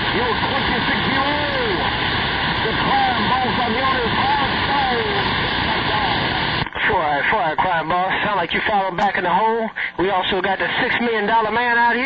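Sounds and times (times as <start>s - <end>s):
faint garbled radio voice: 0.0s - 2.0s, 2.6s - 12.0s
radio static hiss: 0.0s - 12.0s.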